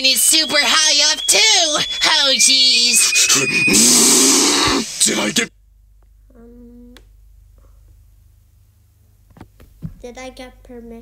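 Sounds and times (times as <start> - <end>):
held high sung note: 0.0 - 4.9
cartoon character growling scream: 3.6 - 4.8.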